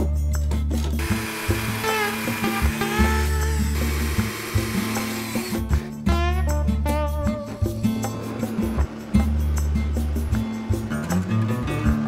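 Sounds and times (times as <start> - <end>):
background music with bass line: 0.0 - 12.0
cordless drill driving screws: 1.0 - 5.8.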